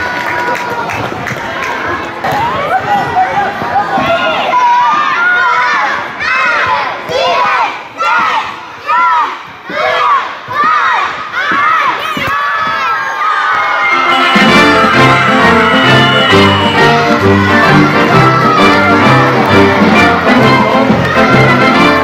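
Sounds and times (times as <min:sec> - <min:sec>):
children shouting and cheering: 0:02.3 - 0:22.0
music: 0:13.8 - 0:22.0.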